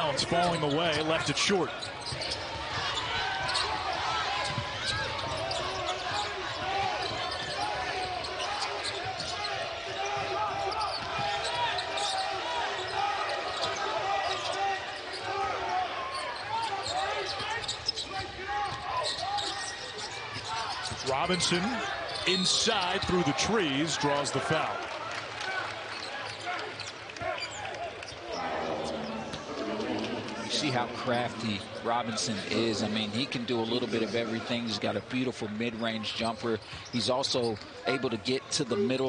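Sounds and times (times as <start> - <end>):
arena chatter: 0.0 - 39.0
sneaker squeaks on floor: 1.8 - 6.3, 7.0 - 15.2, 16.1 - 23.2.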